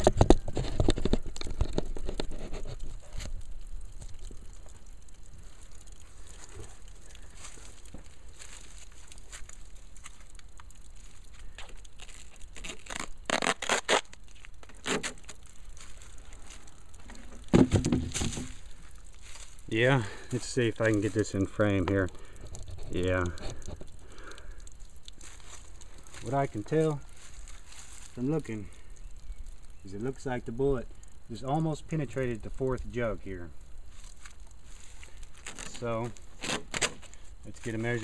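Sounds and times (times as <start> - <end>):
plastic jugs rustling and crinkling: 0.0 - 38.0
tape pulled loose: 11.6 - 15.4, 36.4 - 37.2.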